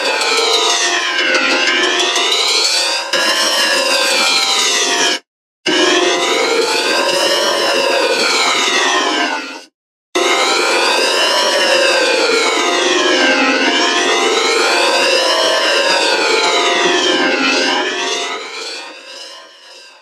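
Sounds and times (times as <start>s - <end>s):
gliding siren-like tones: 5.8s - 9.7s, 10.3s - 20.0s.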